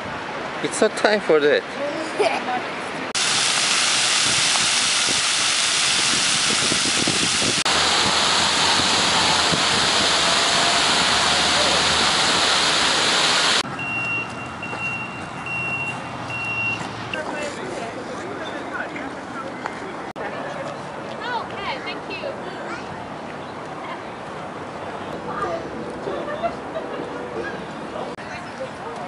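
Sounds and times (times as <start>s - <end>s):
fountain jets spraying water: 3.2s - 13.9s.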